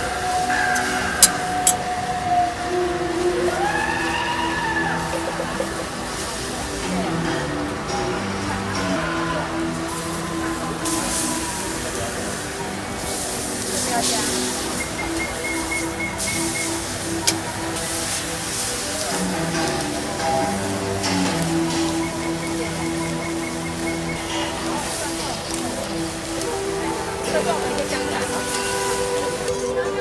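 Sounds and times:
music: 0.0 - 30.0
voices: 0.0 - 30.0
meat sizzling on a griddle: 3.2 - 29.7.

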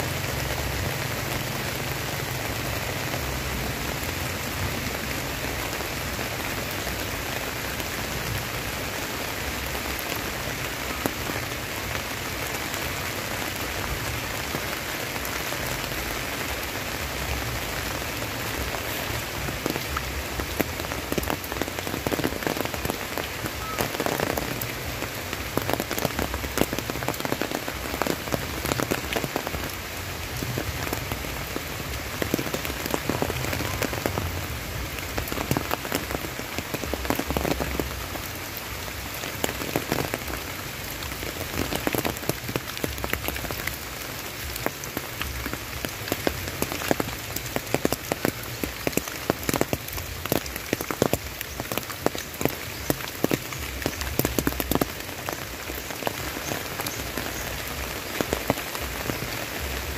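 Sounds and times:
steady rain: 0.0 - 59.9.

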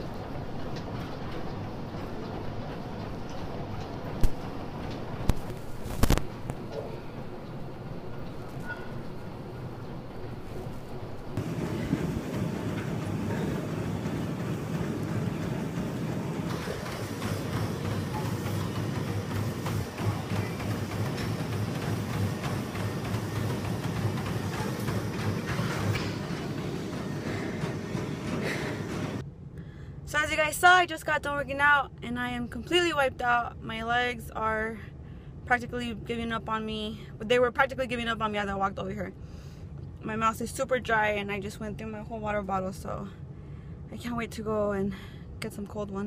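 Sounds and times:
cardio machine rumble: 0.0 - 29.4.

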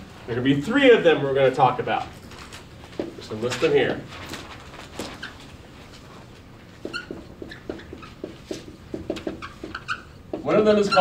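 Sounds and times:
marker squeaking on whiteboard: 5.0 - 5.6, 6.7 - 11.0.

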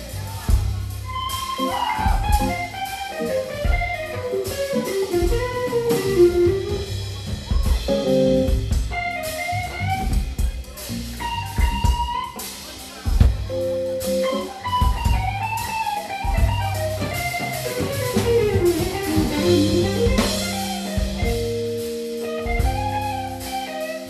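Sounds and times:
electric bass: 0.0 - 12.4, 13.1 - 24.0
drum kit: 0.0 - 24.0
electric guitar: 1.1 - 24.0.

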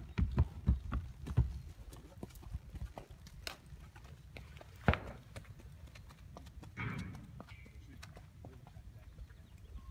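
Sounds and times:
horse hooves stepping: 0.0 - 9.4.

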